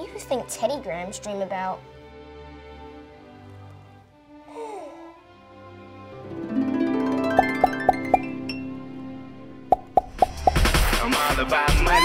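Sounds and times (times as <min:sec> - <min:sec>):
cartoon pop sound effects: 0:09.7 - 0:10.8.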